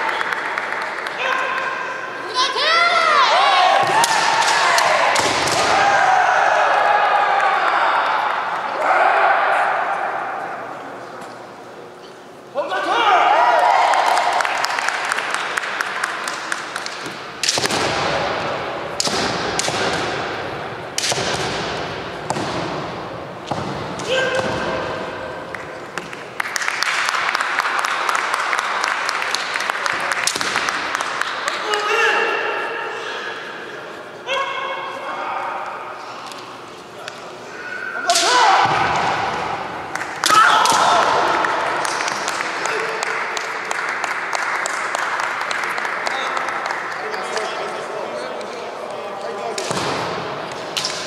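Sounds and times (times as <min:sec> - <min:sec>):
fencers shouting with hall echo: 0:01.2 - 0:10.8, 0:24.0 - 0:25.4, 0:31.4 - 0:33.6, 0:37.5 - 0:43.1
loud sharp echoing knocks: 0:17.0 - 0:26.1, 0:49.6 - 0:51.0.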